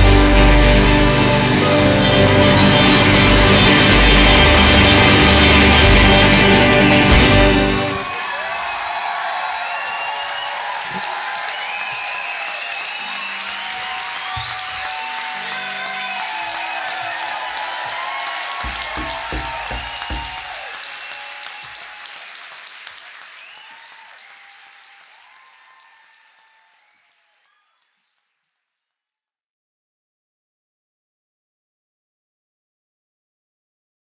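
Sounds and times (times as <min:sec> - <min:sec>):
audience applauding and cheering: 0:00.0 - 0:27.9
low thumps: 0:18.6 - 0:20.5.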